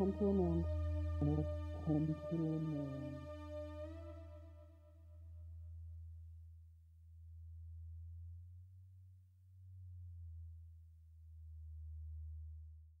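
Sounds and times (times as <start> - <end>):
low synthesizer drone: 0.0 - 5.0.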